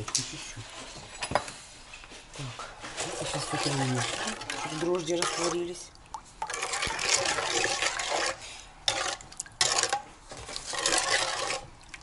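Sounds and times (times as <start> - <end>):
spoon stirring water in bowl: 2.9 - 12.0.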